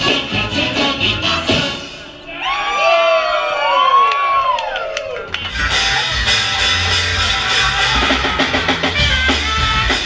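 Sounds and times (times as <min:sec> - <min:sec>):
audience whooping and cheering: 0:02.2 - 0:08.8.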